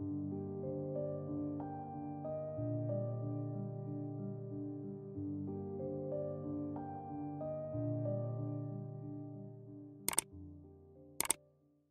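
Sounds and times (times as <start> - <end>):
soft piano chords music: 0.0 - 11.9
sharp double click: 10.1 - 10.3.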